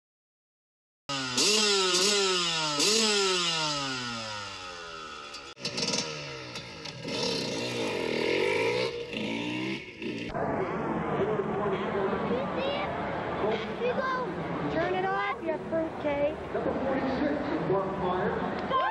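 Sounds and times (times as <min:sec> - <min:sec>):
motorcycle engine revving: 0:01.1 - 0:12.3.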